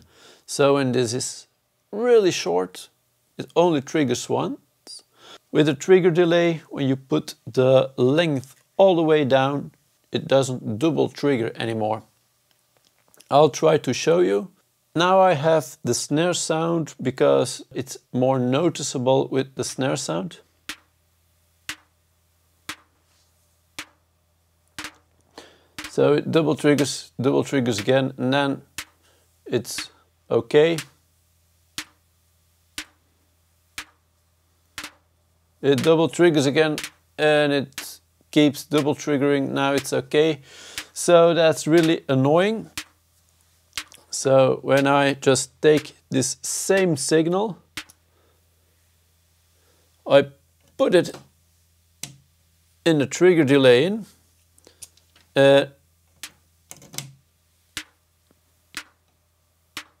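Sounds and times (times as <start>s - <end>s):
electronic snare drum hits: 20.7s - 21.0s, 21.7s - 21.9s, 22.7s - 23.0s, 23.8s - 24.0s, 24.8s - 25.1s, 25.8s - 26.0s, 26.7s - 27.0s, 27.8s - 28.0s, 28.8s - 29.0s, 30.8s - 31.0s, 31.8s - 32.0s, 32.8s - 33.0s, 33.8s - 34.0s, 34.8s - 35.1s, 36.7s - 37.0s, 39.8s - 40.0s, 40.8s - 41.1s, 41.8s - 42.0s, 42.7s - 43.0s, 45.8s - 46.0s, 57.8s - 58.0s, 59.8s - 60.0s.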